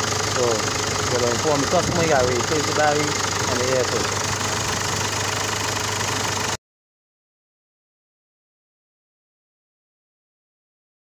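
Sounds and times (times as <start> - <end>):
diesel engine idling: 0.0 - 6.6.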